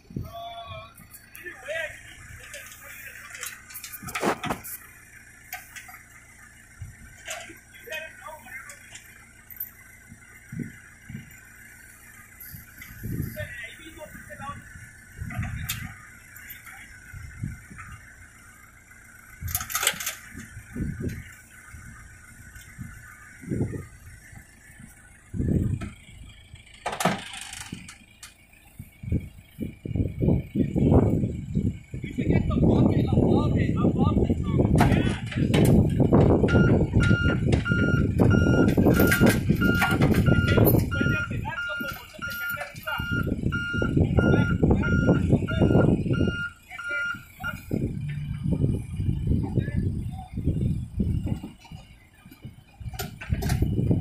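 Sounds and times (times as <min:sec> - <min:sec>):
diesel engine running under load: 0:00.0 - 0:54.0
men calling out: 0:00.2 - 0:03.8, 0:07.3 - 0:09.1.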